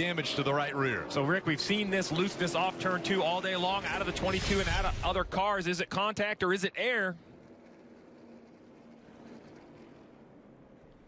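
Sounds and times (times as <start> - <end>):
race cars running at speed: 0.0 - 11.0.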